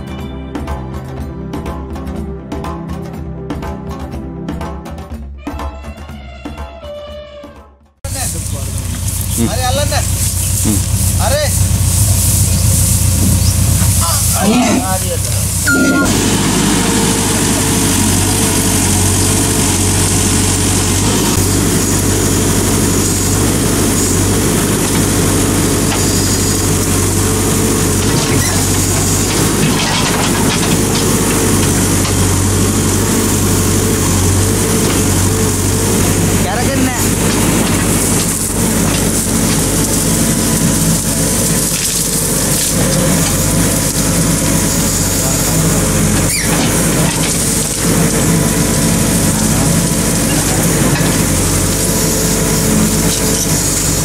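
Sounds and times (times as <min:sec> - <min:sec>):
diesel engine running: 0:08.0 - 0:54.0
faint voices: 0:08.1 - 0:11.7.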